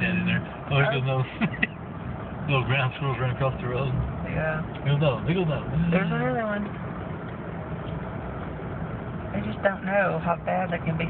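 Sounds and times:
vehicle engine and tyre noise: 0.0 - 11.0.

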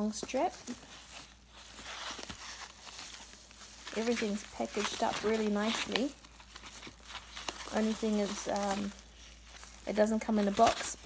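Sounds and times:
packing wrap rustling: 0.0 - 11.0.

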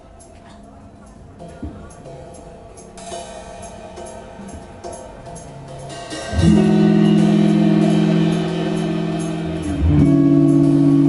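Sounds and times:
drum kit hi-hat and cymbal: 1.1 - 11.0
bass guitar: 6.3 - 11.0
electric guitar: 6.3 - 11.0.

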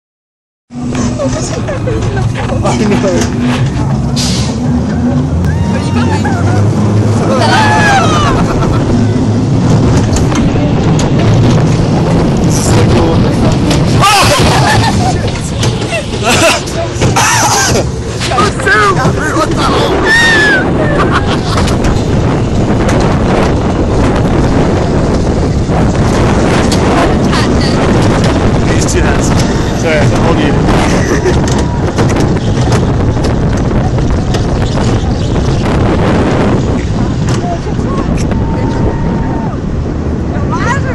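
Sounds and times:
roller coaster rumbling on track: 0.7 - 40.9
wind on microphone: 0.7 - 40.9.

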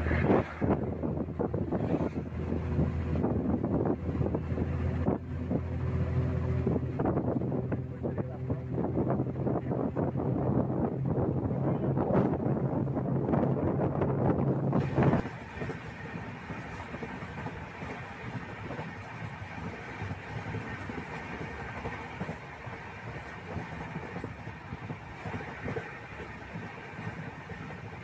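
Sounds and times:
train rumble inside carriage: 0.0 - 28.0.

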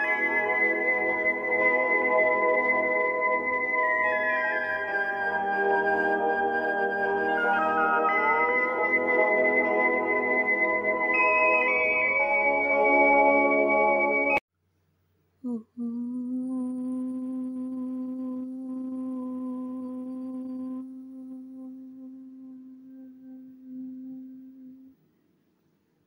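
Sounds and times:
person chanting om: 0.0 - 11.0, 15.4 - 25.0.

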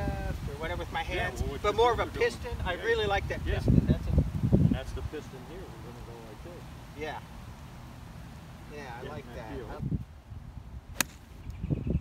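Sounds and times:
golf club striking ball: 10.9 - 11.3.

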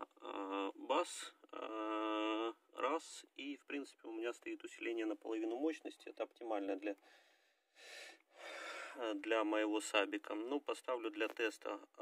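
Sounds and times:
man speaking: 0.0 - 7.0, 8.9 - 12.0
man breathing faintly: 7.0 - 9.0.

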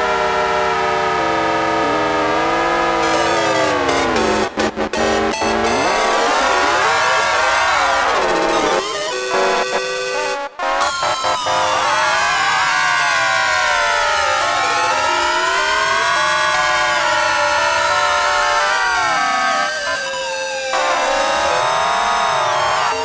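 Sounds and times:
electronic siren-like sweeping tones: 0.0 - 23.0.

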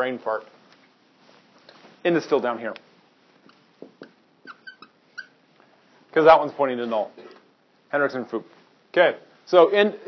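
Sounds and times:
marker squeaking on whiteboard: 3.4 - 5.4.

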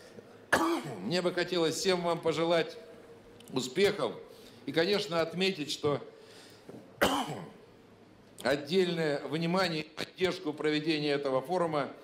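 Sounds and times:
man coughing: 0.5 - 1.1, 7.0 - 7.6.

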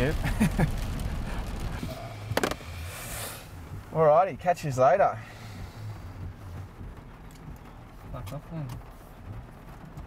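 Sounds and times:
faint low car cabin hum: 0.0 - 10.0.

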